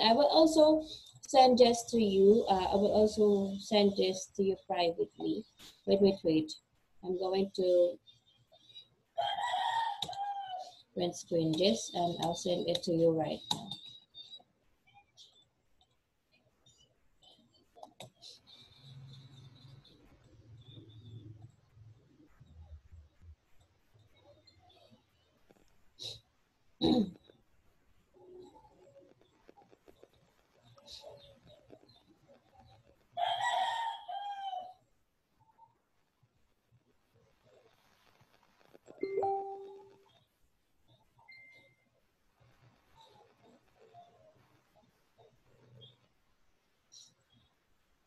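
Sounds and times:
rooster crowing: 9.2 - 10.7, 33.2 - 34.7.

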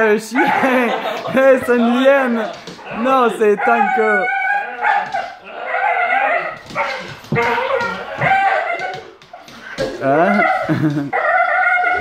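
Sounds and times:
dog making wavering cries: 2.9 - 9.2, 10.3 - 12.0.

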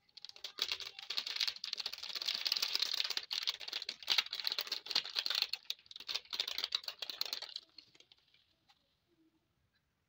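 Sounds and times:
plastic sachet crinkling: 0.0 - 8.4.

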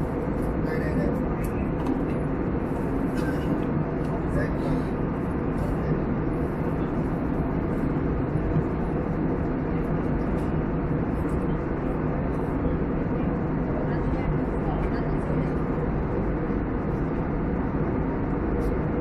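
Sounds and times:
jet engines and airflow roar: 0.0 - 19.0.

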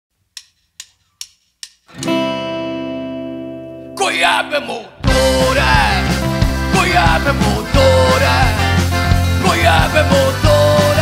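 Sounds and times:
strummed guitar chord: 1.9 - 11.0.

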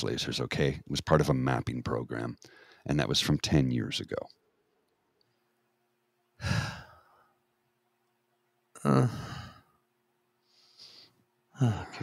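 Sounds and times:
man sighing: 6.4 - 7.2, 8.8 - 9.7, 11.6 - 12.0.

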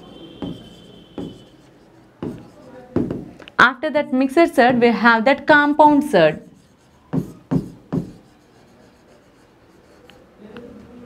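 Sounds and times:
stylus scratching on screen: 0.0 - 3.3, 5.9 - 10.3.

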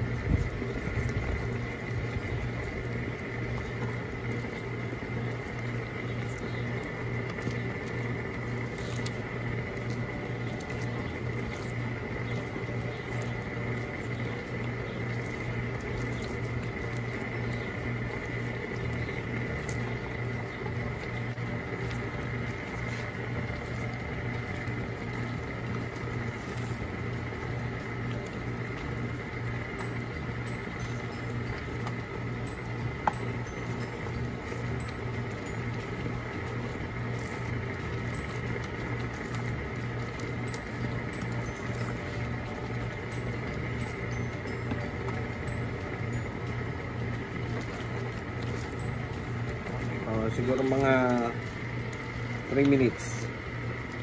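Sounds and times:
steady low hum: 0.0 - 54.0
thick candy mixture bubbling: 0.0 - 54.0.

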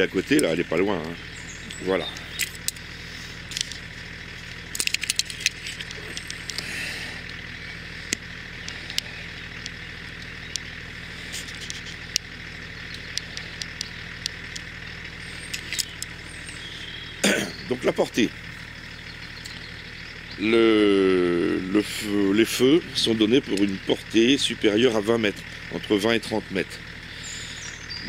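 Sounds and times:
car engine idling: 0.0 - 28.0.

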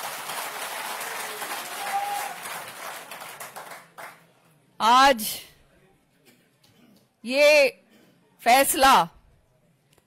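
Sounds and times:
audience applause: 0.0 - 4.2.

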